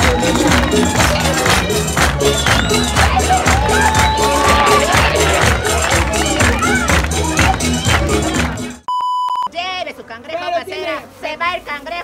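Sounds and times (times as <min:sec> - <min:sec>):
crowd noise: 0:00.0 - 0:08.9
music: 0:00.0 - 0:08.9
steady electronic beep: 0:08.9 - 0:09.5.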